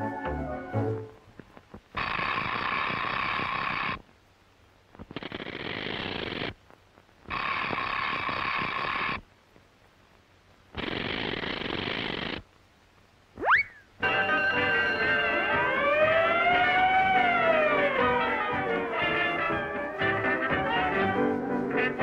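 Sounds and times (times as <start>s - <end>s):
telephone bell ringing: 14.0s - 15.8s.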